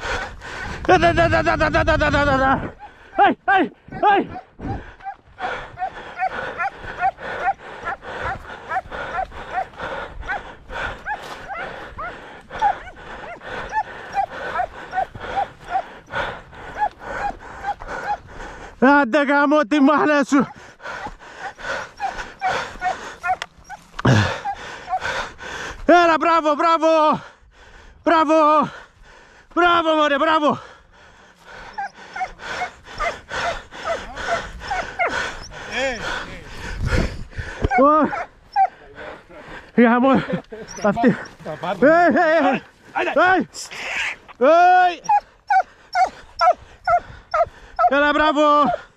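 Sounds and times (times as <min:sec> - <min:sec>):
person breathing heavily: 0:00.0 - 0:19.0, 0:20.2 - 0:25.9, 0:27.1 - 0:29.6, 0:30.2 - 0:48.9
hounds yelping: 0:02.6 - 0:18.7, 0:20.3 - 0:25.4, 0:31.3 - 0:36.3, 0:37.4 - 0:39.2, 0:40.3 - 0:42.6, 0:44.7 - 0:48.9.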